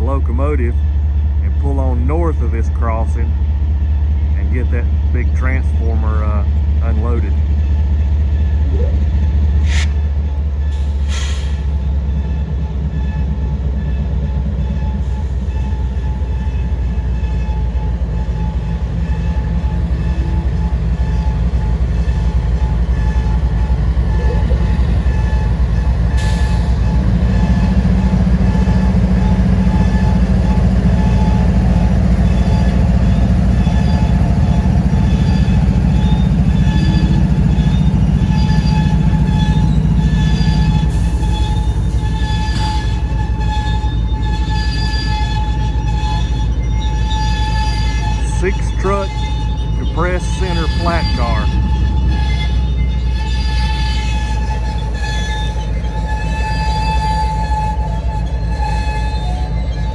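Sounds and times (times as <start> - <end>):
diesel locomotive engine rumbling: 0.0 - 59.9.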